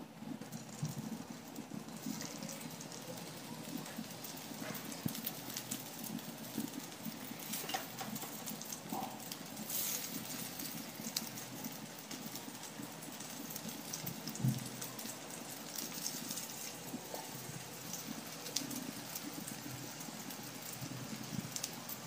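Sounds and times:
oil sizzling with crackles: 0.0s - 22.0s.

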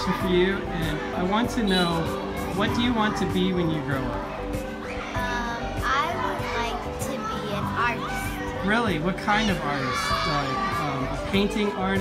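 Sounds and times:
background music: 0.0s - 12.0s
children playing: 0.0s - 12.0s
girl speaking: 5.2s - 8.4s.

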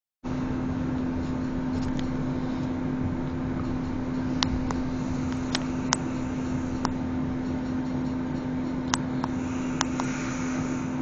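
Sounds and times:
steady hum: 0.2s - 11.0s.

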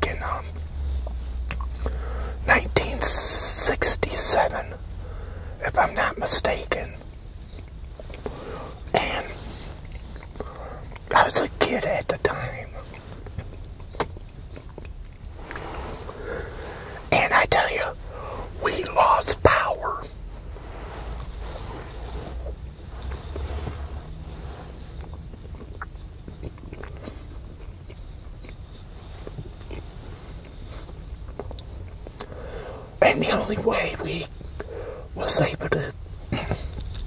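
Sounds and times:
low steady hum: 0.0s - 37.0s
biting and chewing food: 25.0s - 32.3s.

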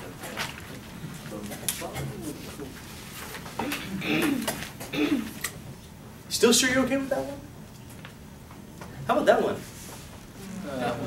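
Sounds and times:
murmur of voices: 10.3s - 11.0s.

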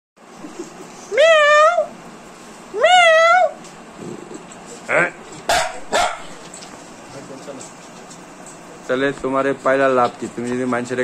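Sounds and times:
dog crying high-pitched: 1.1s - 2.0s, 2.7s - 3.6s.

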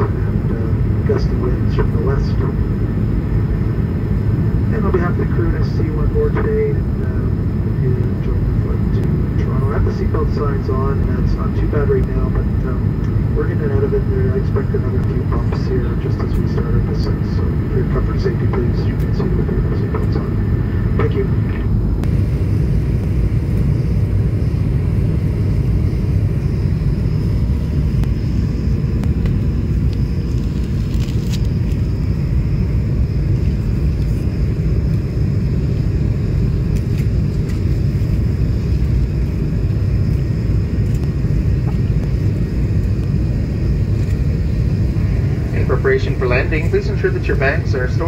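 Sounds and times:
airplane cabin roar: 0.0s - 48.0s.

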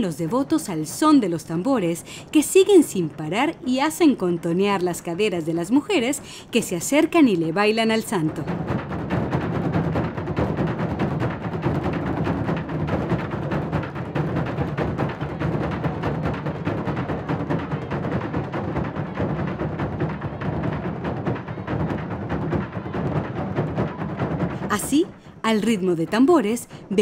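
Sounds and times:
drums beaten with sticks: 7.2s - 26.9s.

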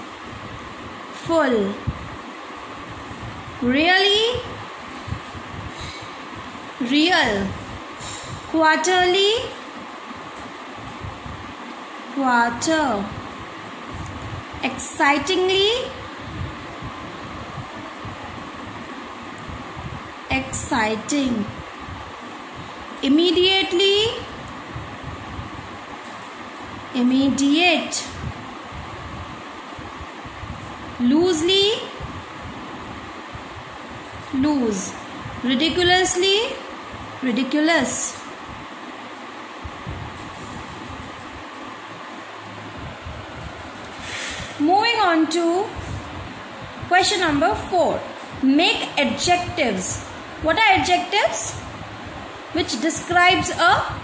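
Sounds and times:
steady background hiss: 0.0s - 54.0s
steady whooshing background noise: 0.0s - 54.0s.

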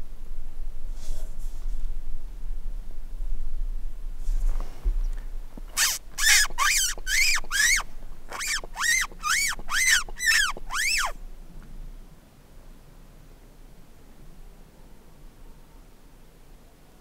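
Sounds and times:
high mouth squeaks: 5.7s - 11.2s.

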